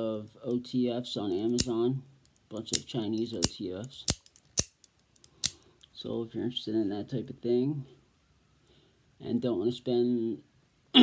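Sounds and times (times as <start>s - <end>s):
automatic knife blade snapping: 1.5s - 1.7s, 4.1s - 5.6s.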